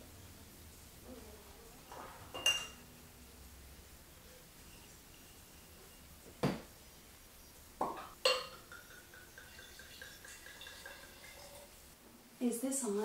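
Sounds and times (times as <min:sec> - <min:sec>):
glassware clinking: 0:02.3 - 0:02.8, 0:07.8 - 0:11.7.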